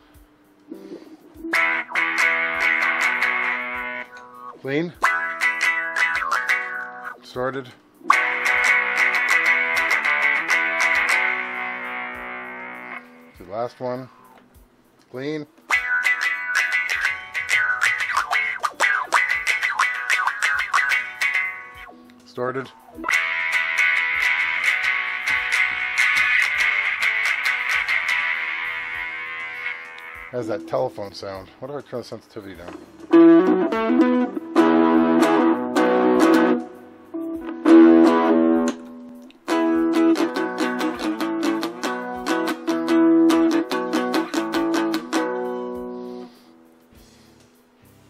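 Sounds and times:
electric guitar with wah effect: 0.0s - 13.5s, 15.6s - 31.1s, 32.6s - 47.8s.

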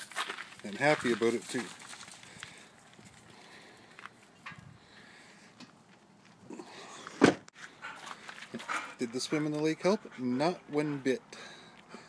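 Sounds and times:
dog panting: 7.7s - 11.2s.

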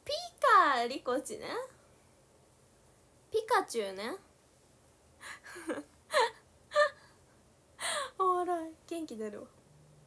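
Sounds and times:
woman laughing: 5.3s - 7.0s.

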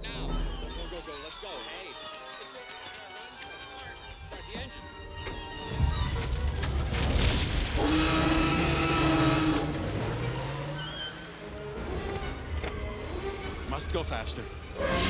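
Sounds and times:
orchestral music: 0.0s - 7.1s, 7.8s - 15.0s.

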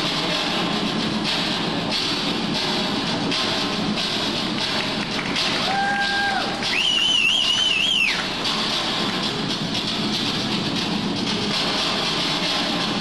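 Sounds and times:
crowd applauding: 4.6s - 8.4s
high wavering whistle: 5.7s - 8.3s.

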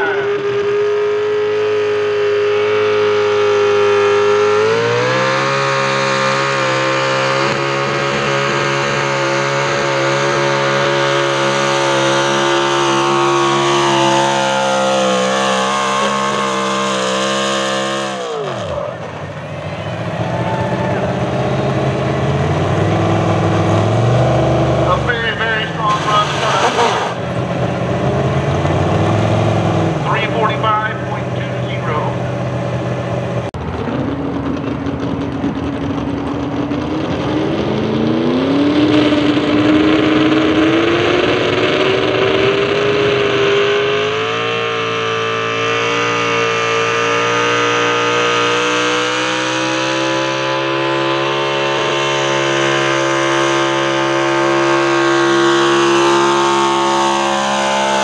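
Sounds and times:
truck engine revving at full throttle: 0.0s - 58.0s.

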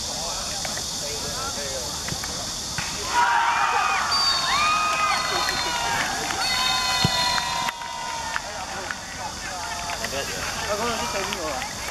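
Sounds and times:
young voices shouting: 3.0s - 8.7s.

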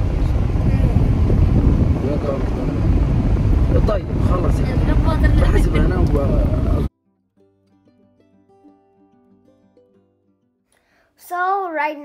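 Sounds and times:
car road and engine rumble: 0.0s - 6.9s
voices talking: 3.8s - 6.9s.

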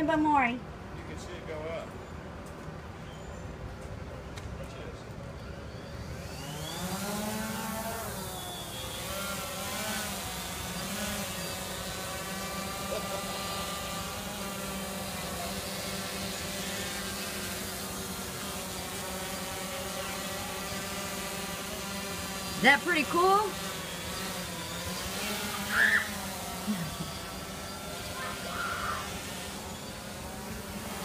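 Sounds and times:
drone motors whining and humming: 2.0s - 31.0s.

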